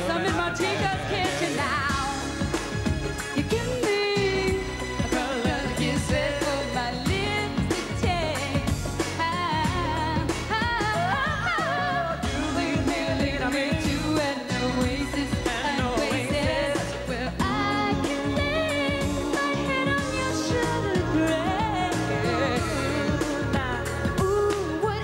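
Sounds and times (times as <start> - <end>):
woman singing lead vocal: 0.0 - 2.6, 3.2 - 25.0
live pop band playing: 0.0 - 25.0.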